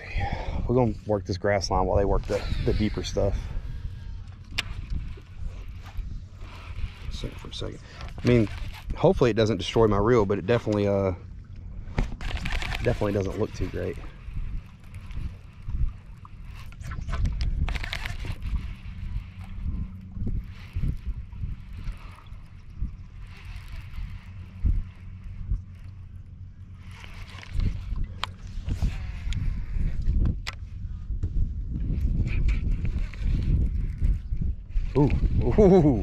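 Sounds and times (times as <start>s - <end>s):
water lapping against boat hull: 0.0s - 36.0s
wind buffeting microphone: 0.0s - 36.0s.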